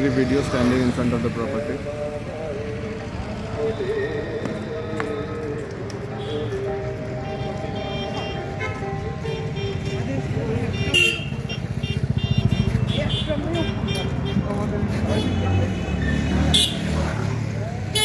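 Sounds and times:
background music: 0:00.0 - 0:11.2
motor vehicles passing: 0:00.0 - 0:18.0
voices: 0:00.0 - 0:18.0.

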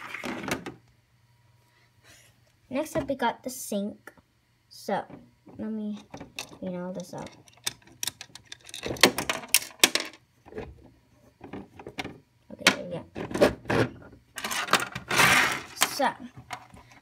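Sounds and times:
plastic pieces clicking and rattling: 0:06.0 - 0:10.2, 0:14.4 - 0:16.7
rustling scrape: 0:14.4 - 0:15.8.

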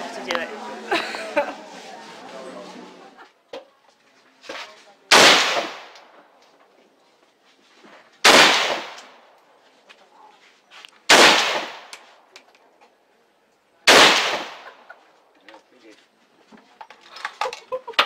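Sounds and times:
rifle shots with ringing echo: 0:05.1 - 0:06.0, 0:08.2 - 0:09.3, 0:11.1 - 0:12.0, 0:13.9 - 0:14.8.

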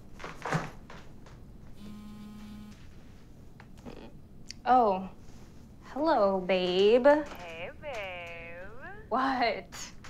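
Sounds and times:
mobile phone vibrating: 0:01.8 - 0:02.9.

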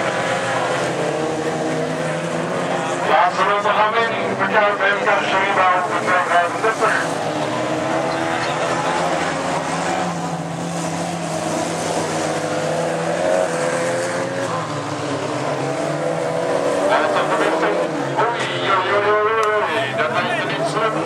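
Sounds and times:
racing car engines: 0:00.0 - 0:21.0.

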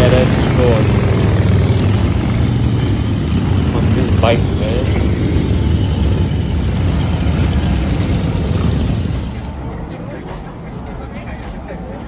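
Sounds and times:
motorcycles riding past: 0:00.0 - 0:12.0.

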